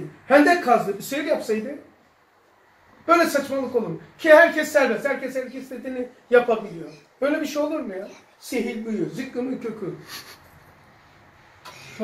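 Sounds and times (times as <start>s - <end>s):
man speaking: 0.0s - 1.9s, 3.1s - 10.1s.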